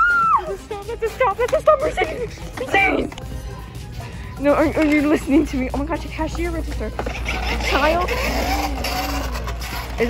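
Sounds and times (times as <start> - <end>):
scooter wheels rolling on tiles: 4.4 - 10.0.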